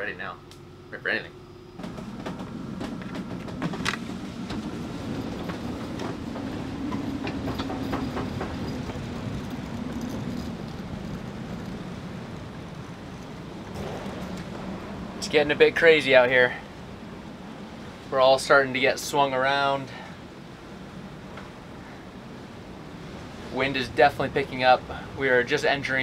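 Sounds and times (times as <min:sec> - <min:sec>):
storm wind roaring: 0:01.8 - 0:26.0.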